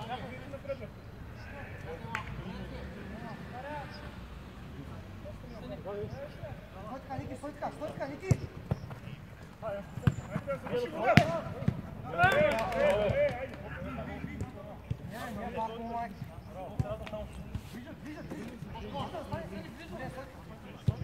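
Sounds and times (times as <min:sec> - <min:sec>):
players shouting: 0:00.1 - 0:04.1, 0:09.7 - 0:14.5.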